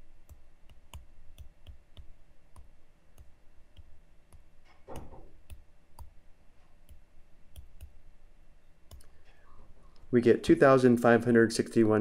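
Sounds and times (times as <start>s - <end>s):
computer mouse clicking: 0.2s - 8.0s, 8.8s - 9.4s.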